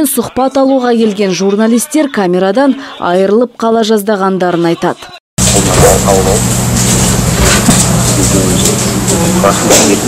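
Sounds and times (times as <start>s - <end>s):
electrical hum and hiss: 5.4s - 10.0s
man talking over telephone line: 5.5s - 6.5s.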